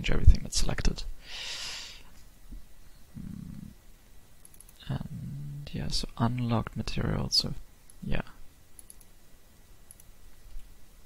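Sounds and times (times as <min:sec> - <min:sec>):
man humming low: 0:03.1 - 0:03.8, 0:04.8 - 0:05.8.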